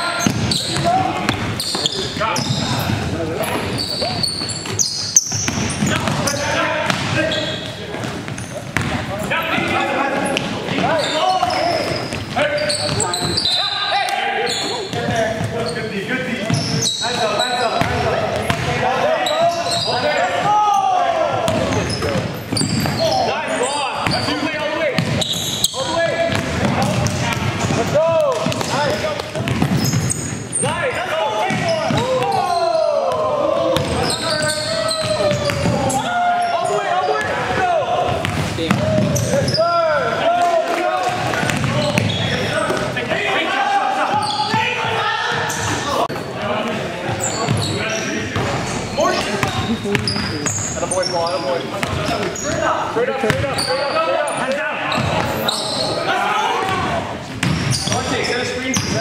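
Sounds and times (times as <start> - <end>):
sneakers squeaking: 0.0 - 40.3, 41.0 - 59.0
basketball bouncing on hardwood: 7.9 - 9.0, 26.3 - 30.1, 41.4 - 42.9
players shouting: 17.1 - 46.6, 51.9 - 58.8.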